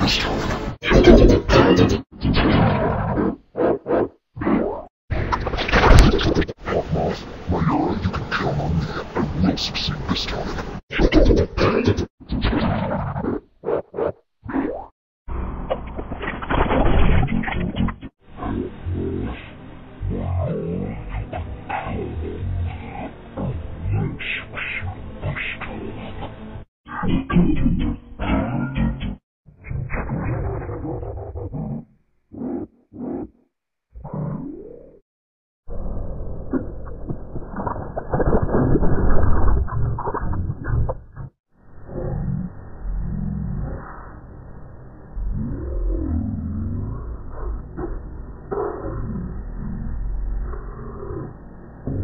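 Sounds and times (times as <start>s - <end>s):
voice warped by audio effects: 0.0s - 14.9s, 16.4s - 35.0s, 35.7s - 52.0s.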